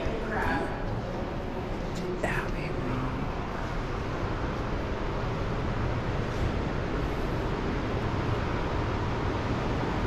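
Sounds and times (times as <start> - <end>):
large hall ambience with low rumble: 0.0 - 10.0.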